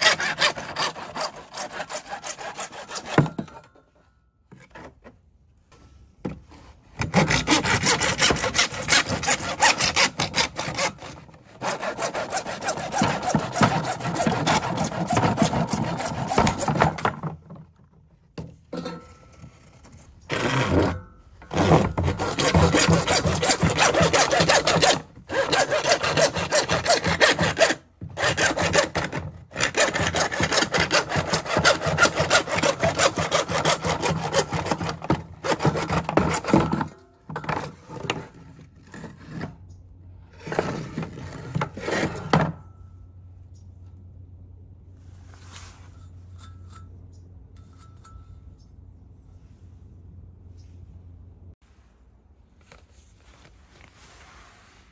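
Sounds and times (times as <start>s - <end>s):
hand saw cutting plastic: 0.0s - 3.7s, 7.0s - 17.6s, 20.2s - 39.7s, 40.4s - 42.5s.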